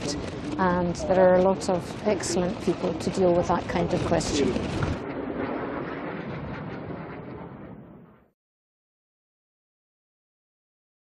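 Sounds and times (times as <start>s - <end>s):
rumbling mechanical drone: 0.0s - 8.3s.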